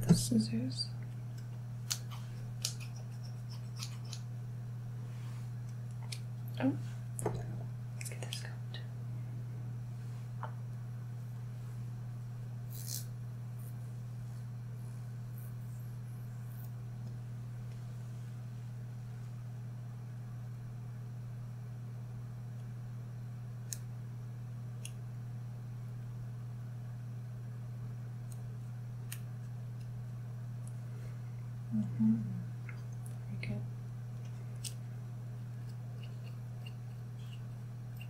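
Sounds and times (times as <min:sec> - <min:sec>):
low electrical hum: 0:00.0 - 0:38.0
comb and scissors handling: 0:01.3 - 0:04.2, 0:12.7 - 0:13.8.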